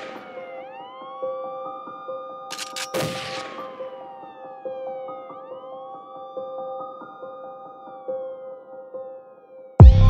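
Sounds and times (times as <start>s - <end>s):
siren wailing: 0.0s - 2.5s.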